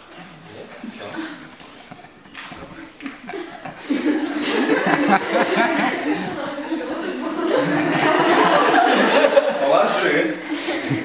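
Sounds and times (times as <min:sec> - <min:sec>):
people talking quietly: 0:00.0 - 0:11.0
people chuckling: 0:00.1 - 0:11.0.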